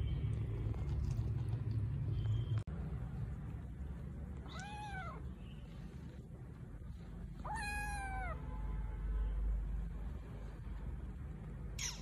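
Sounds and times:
steady low rumble: 0:00.0 - 0:11.8
kitten meowing: 0:04.4 - 0:05.3, 0:07.4 - 0:08.4.

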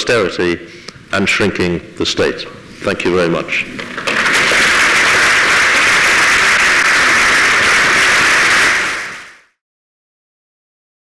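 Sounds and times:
audience applauding: 0:03.8 - 0:09.5.

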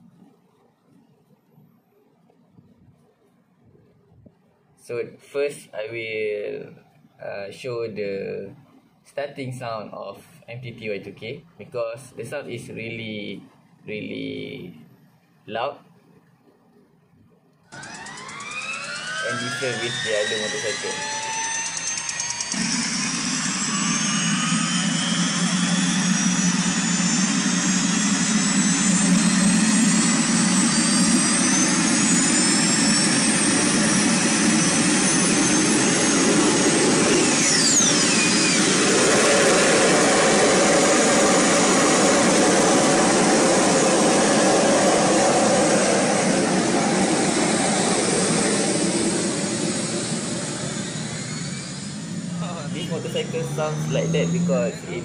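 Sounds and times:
turbine whine: 0:00.0 - 0:55.0
gas turbine roaring: 0:17.7 - 0:55.0.

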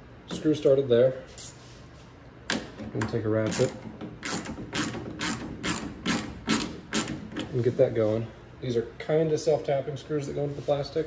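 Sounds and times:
hand ratchet clicking: 0:03.5 - 0:07.4.

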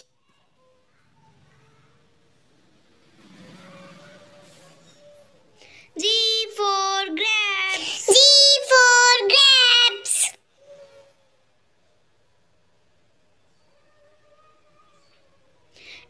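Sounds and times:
child singing: 0:06.0 - 0:10.3.

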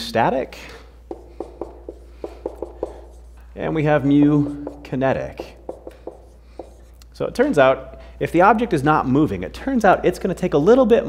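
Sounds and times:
marker writing on whiteboard: 0:01.0 - 0:07.2.

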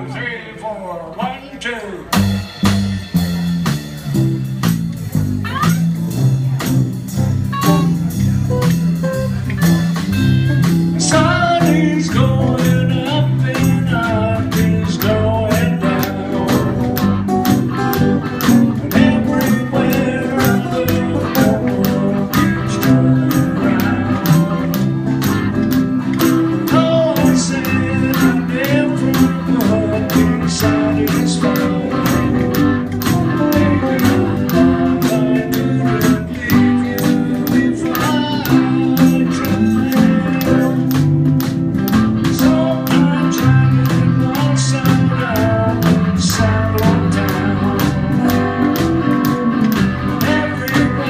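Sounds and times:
drums beating: 0:02.0 - 0:51.0
guitars playing riff: 0:02.1 - 0:51.0
man singing: 0:10.9 - 0:41.2, 0:42.2 - 0:51.0.

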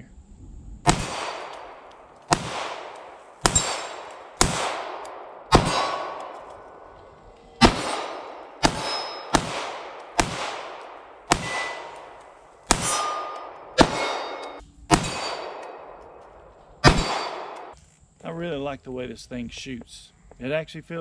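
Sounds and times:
pistol shots echoing: 0:00.9 - 0:06.9, 0:07.6 - 0:16.2, 0:16.8 - 0:17.8
metallic ring of steel targets: 0:02.9 - 0:06.9, 0:07.5 - 0:17.8.

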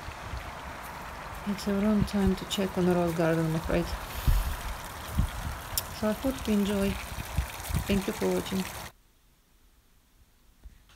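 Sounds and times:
fountain water splashing: 0:00.0 - 0:08.9.

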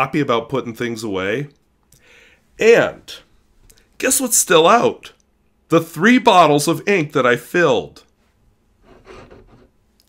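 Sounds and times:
faint rubbing and shuffling: 0:08.2 - 0:09.9.

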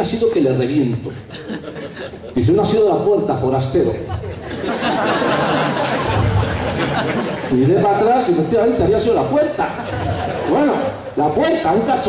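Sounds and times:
audience chattering and laughing: 0:00.9 - 0:03.0, 0:03.8 - 0:08.6, 0:09.2 - 0:11.5.

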